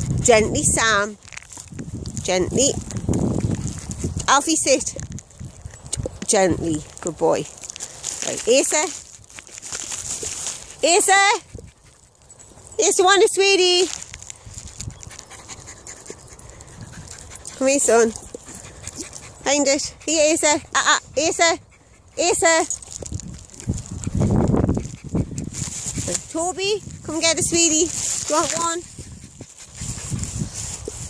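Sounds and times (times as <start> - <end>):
dogs panting: 2.9 - 4.9, 9.8 - 31.0.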